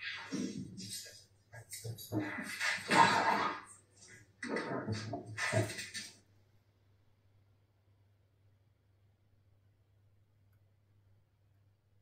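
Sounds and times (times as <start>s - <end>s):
low electrical hum: 0.8s - 12.0s.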